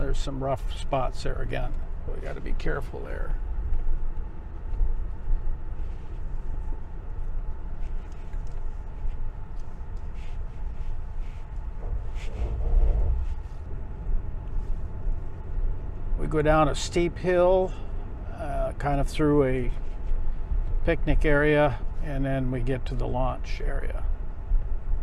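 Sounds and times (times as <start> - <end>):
car engine and tyre rumble: 0.0 - 25.0
light rattles: 1.5 - 16.2.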